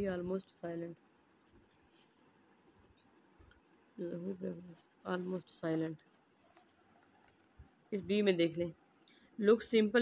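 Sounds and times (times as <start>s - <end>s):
person speaking: 0.0s - 2.2s, 4.0s - 8.8s, 9.4s - 10.0s.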